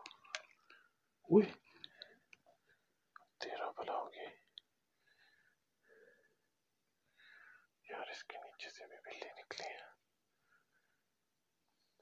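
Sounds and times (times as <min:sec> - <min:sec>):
man whispering: 0:01.2 - 0:01.9, 0:03.2 - 0:04.7, 0:07.8 - 0:10.0.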